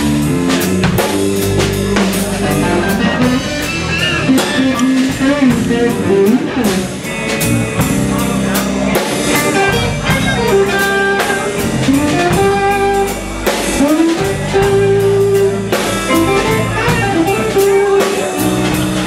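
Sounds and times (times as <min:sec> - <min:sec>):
blues band playing: 0:00.0 - 0:19.0
electric guitar bent notes: 0:00.0 - 0:19.0.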